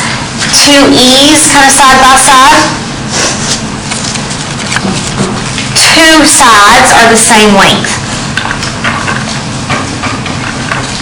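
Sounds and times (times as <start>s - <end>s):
classroom background hiss: 0.0s - 11.0s.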